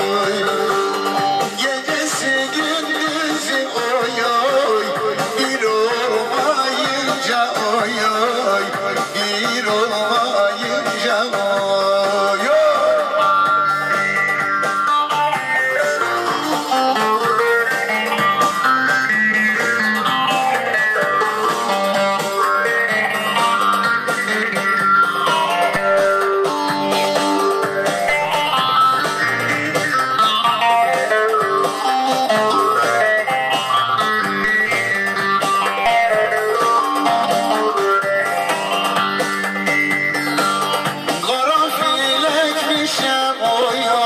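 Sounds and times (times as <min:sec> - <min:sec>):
long-necked lute plucked: 0:12.0 - 0:41.8.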